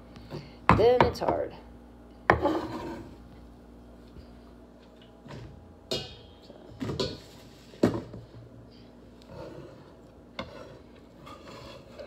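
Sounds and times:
metal bowl ringing: 5.9s - 7.2s.

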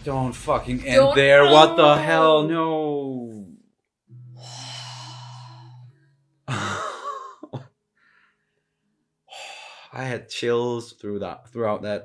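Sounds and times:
person sighing: 4.2s - 5.9s, 6.5s - 7.6s, 9.3s - 10.0s.

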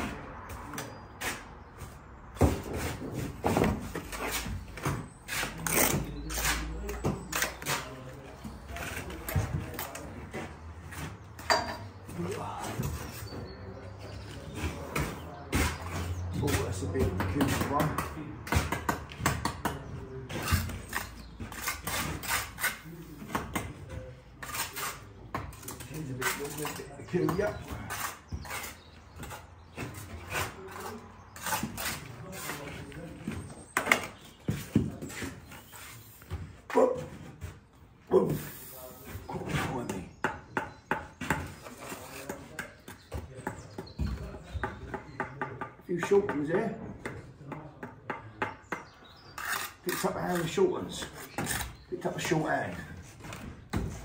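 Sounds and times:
trowel scraping brick and mortar: 2.5s - 37.7s, 38.3s - 45.1s, 48.6s - 54.0s.

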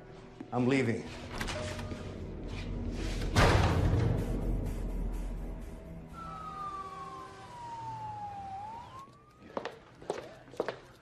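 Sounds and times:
police siren wailing: 6.1s - 9.9s.

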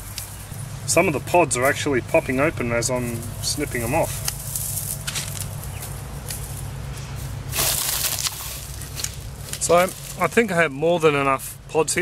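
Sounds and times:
low background hum: 0.0s - 12.0s
dry seed stalks rustling: 1.6s - 11.6s.

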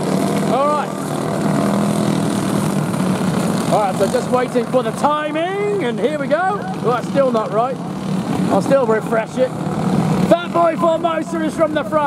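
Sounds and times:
distant racing engines droning: 0.0s - 12.0s.

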